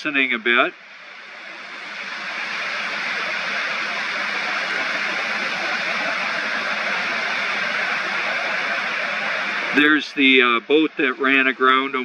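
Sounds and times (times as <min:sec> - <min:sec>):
surf rushing: 0:00.0 - 0:12.0.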